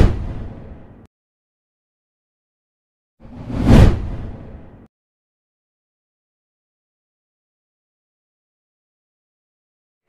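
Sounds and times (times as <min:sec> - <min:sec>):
whoosh transition: 0:03.3 - 0:04.9.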